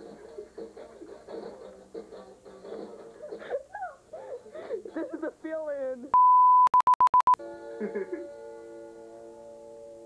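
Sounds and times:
electronic beep: 6.2 - 7.4
stuttering beeps with clicks: 6.2 - 7.4
person laughing: 7.8 - 8.3.

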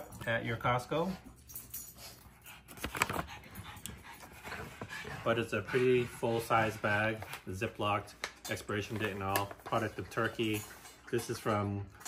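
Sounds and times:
dog panting: 0.9 - 8.2.

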